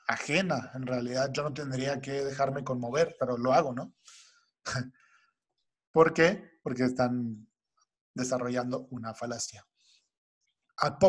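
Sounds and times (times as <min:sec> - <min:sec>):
faint breath: 0:04.0 - 0:05.4, 0:09.8 - 0:10.2.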